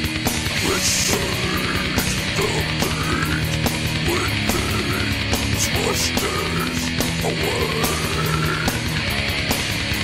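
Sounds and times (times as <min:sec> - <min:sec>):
death metal music: 0:00.0 - 0:10.0.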